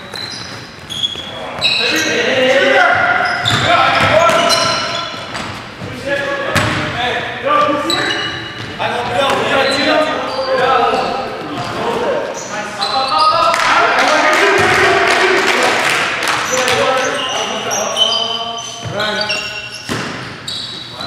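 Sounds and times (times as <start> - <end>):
players calling out: 0.1 - 19.9
basketball bouncing on hardwood: 6.5 - 6.9.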